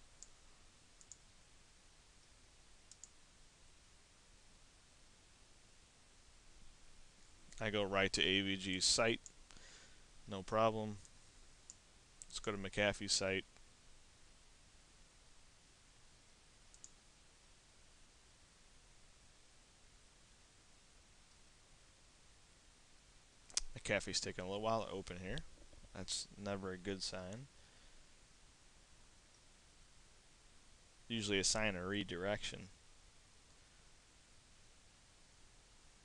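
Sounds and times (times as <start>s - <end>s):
faint steady hiss: 0.0s - 36.0s
faint computer mouse clicks: 1.0s - 1.2s, 2.9s - 3.2s, 16.7s - 17.0s.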